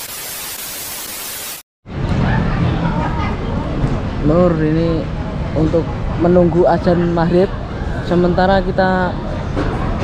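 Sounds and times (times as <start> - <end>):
television static hiss: 0.0 - 1.6.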